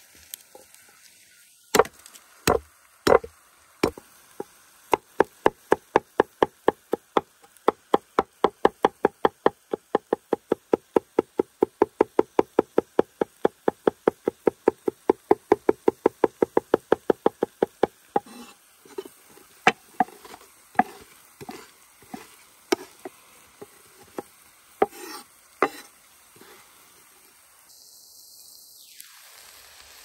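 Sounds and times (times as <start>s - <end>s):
knife chopping on wooden board: 2.5s - 4.0s, 4.9s - 19.1s, 19.7s - 26.6s.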